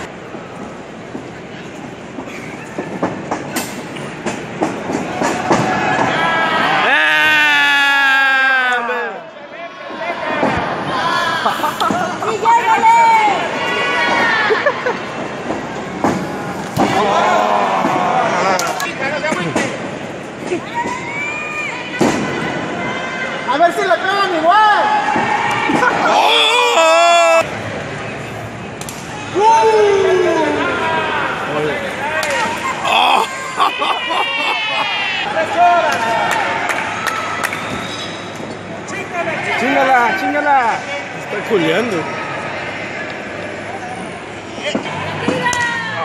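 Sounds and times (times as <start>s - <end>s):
crowd chatter: 0.0s - 46.0s.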